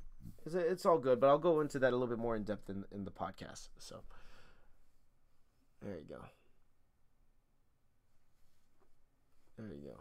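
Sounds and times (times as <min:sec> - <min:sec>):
man speaking: 0:00.3 - 0:04.1, 0:05.8 - 0:06.5, 0:09.6 - 0:10.0.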